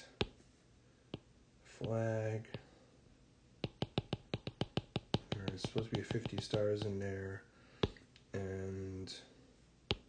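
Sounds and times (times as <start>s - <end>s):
stylus tapping on screen: 0.2s - 0.4s, 1.1s - 2.7s, 3.6s - 7.1s, 7.8s - 8.0s.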